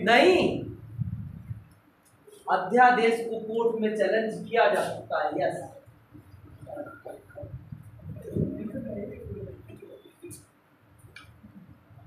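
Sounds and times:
classroom room noise: 0:00.0 - 0:12.0
pigeon cooing: 0:06.5 - 0:10.4.

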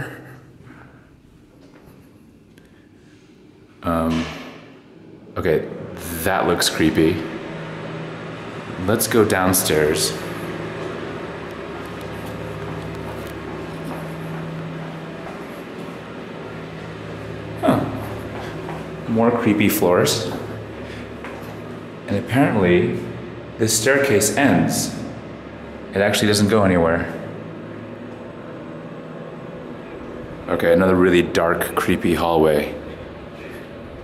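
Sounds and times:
low mechanical hum: 0:00.0 - 0:34.0
footsteps on concrete stairs: 0:12.0 - 0:16.0, 0:17.8 - 0:19.1, 0:21.2 - 0:21.7.

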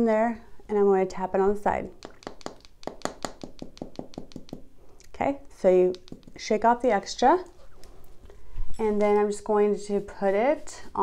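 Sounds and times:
brush tapping plastic jar: 0:01.9 - 0:04.7, 0:05.8 - 0:07.0.

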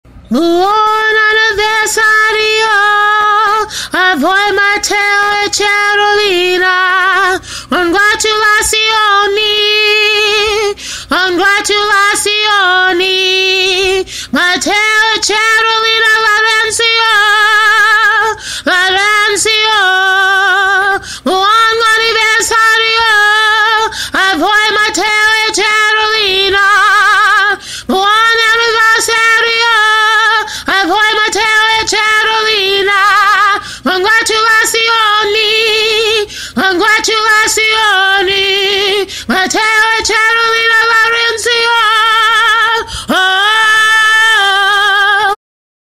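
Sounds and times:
woman singing unaccompanied: 0:00.1 - 0:45.4
quick breath: 0:03.7 - 0:04.0, 0:07.4 - 0:07.7, 0:10.8 - 0:11.1, 0:14.1 - 0:14.4, 0:18.4 - 0:18.7, 0:21.0 - 0:21.3, 0:23.9 - 0:24.2, 0:27.6 - 0:27.9, 0:30.5 - 0:30.7, 0:33.6 - 0:33.9, 0:36.3 - 0:36.6, 0:39.1 - 0:39.3, 0:42.8 - 0:43.1.

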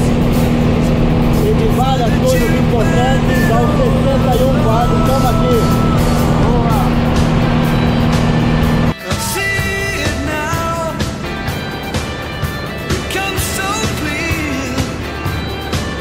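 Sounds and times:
light aircraft engine drone: 0:00.0 - 0:09.0, 0:09.6 - 0:16.0
melodic music: 0:00.0 - 0:16.0
person talking: 0:01.4 - 0:07.2.

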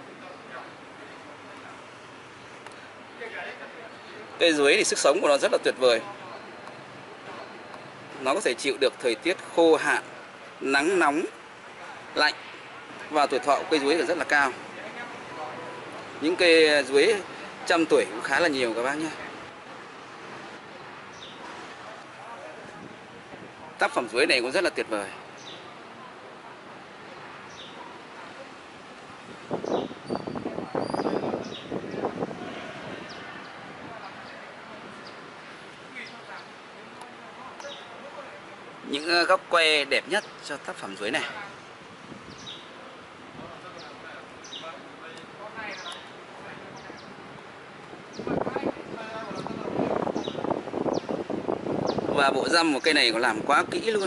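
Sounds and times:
outdoor background noise: 0:00.0 - 0:54.0
voices: 0:00.0 - 0:54.0
wind buffeting microphone: 0:22.5 - 0:23.8, 0:29.1 - 0:35.5, 0:41.7 - 0:44.6, 0:45.4 - 0:54.0.

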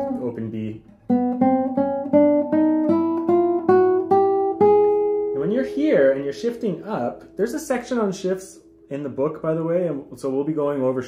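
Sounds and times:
classical guitar plucked notes: 0:00.0 - 0:10.4
man's voice: 0:05.4 - 0:11.0.

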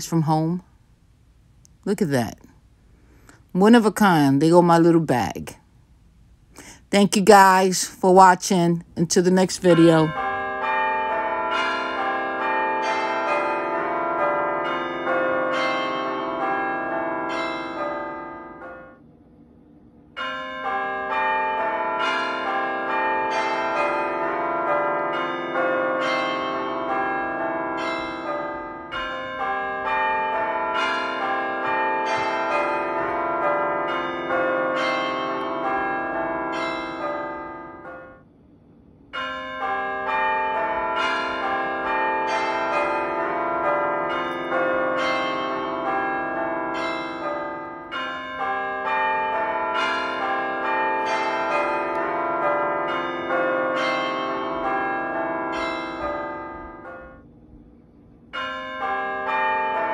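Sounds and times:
struck bells ringing: 0:08.2 - 0:19.0, 0:20.1 - 0:38.5, 0:39.1 - 0:59.9.

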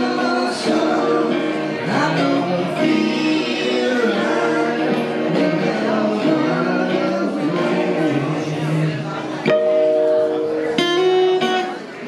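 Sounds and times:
person singing: 0:00.0 - 0:09.5
live song on guitars: 0:00.0 - 0:12.0
strummed guitar chord: 0:00.0 - 0:12.0.

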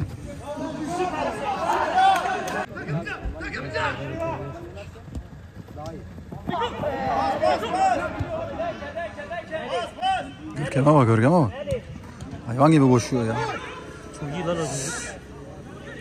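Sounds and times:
men shouting and calling: 0:00.3 - 0:04.9, 0:06.4 - 0:11.9, 0:12.5 - 0:16.0.

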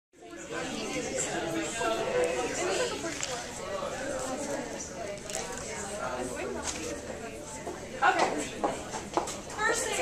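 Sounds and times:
students talking over one another: 0:00.2 - 0:10.0.

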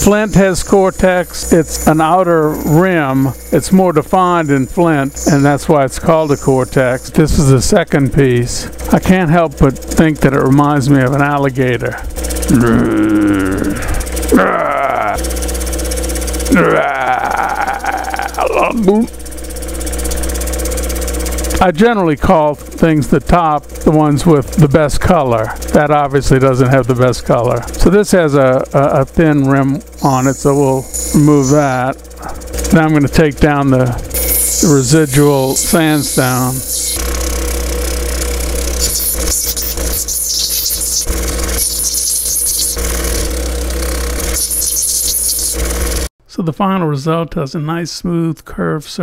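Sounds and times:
hiss of stone grinding: 0:00.0 - 0:07.1
grinding machine motor hum: 0:00.0 - 0:46.1.

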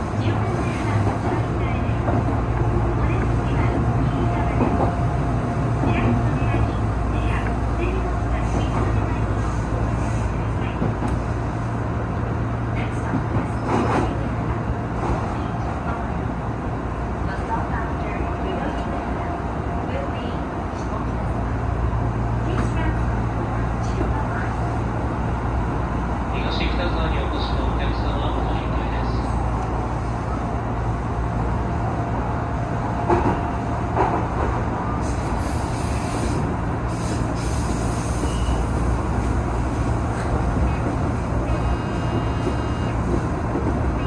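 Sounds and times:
train wheels rumbling on rail: 0:00.0 - 0:44.0.

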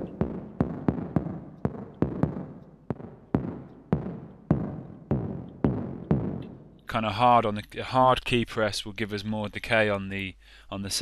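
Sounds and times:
synthesized percussive hits: 0:00.0 - 0:06.9.

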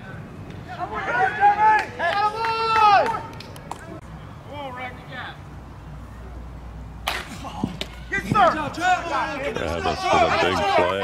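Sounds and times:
players shouting: 0:00.5 - 0:03.4, 0:07.1 - 0:11.0
bat cracking against ball: 0:07.0 - 0:08.1.

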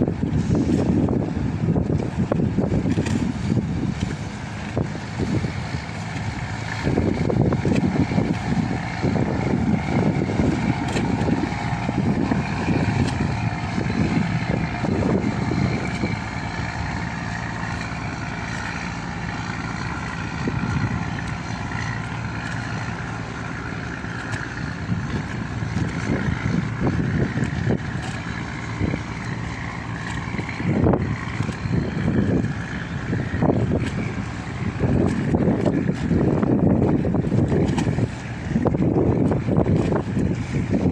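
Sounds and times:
boat engines humming: 0:00.0 - 0:40.9
wind buffeting microphone: 0:00.0 - 0:40.9.

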